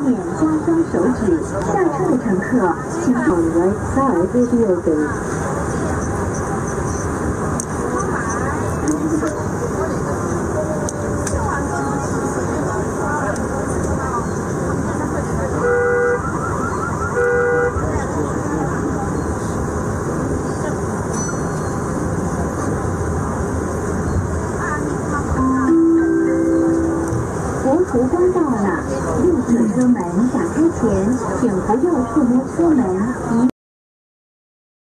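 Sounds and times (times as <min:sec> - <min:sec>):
steady rumbling noise: 0:21.8 - 0:33.5.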